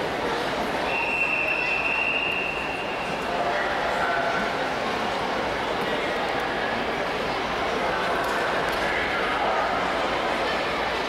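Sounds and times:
echoing crowd hubbub: 0.0s - 11.0s
high-pitched whistle blast: 0.9s - 3.2s.

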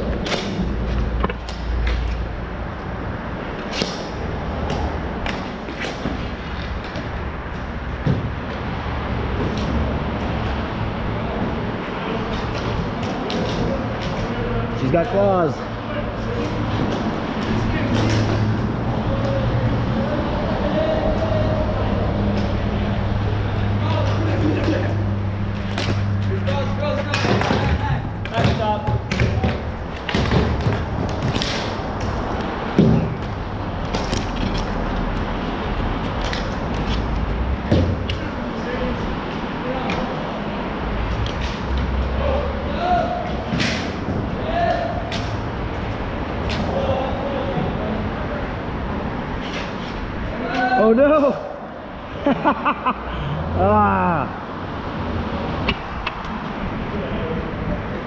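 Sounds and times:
players' voices: 8.9s - 58.0s
hockey sticks clacking on floor: 16.2s - 19.5s, 25.6s - 35.1s, 36.0s - 38.6s.

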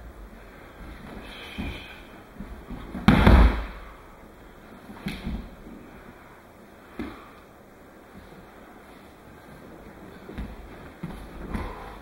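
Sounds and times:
bare feet thumping on mats: 0.9s - 3.9s, 10.2s - 12.0s.

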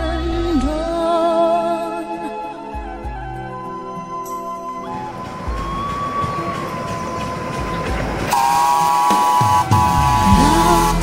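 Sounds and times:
locomotive hissing steam: 4.9s - 11.0s
steam whistle blowing: 4.9s - 11.0s.

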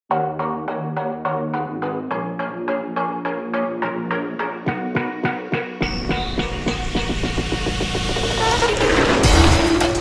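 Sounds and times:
background music with beat: 0.1s - 10.0s.

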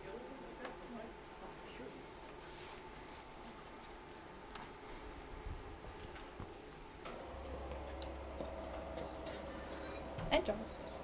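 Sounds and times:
low hum: 7.0s - 11.0s.

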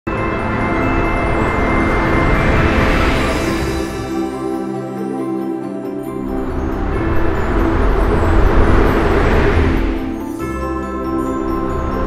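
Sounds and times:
ambient music with low drone: 0.1s - 12.0s
whoosh sound effect: 6.6s - 10.4s.

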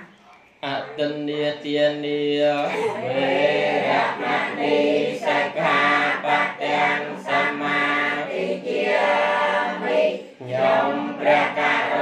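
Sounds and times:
congregation chanting in unison: 0.7s - 12.0s.

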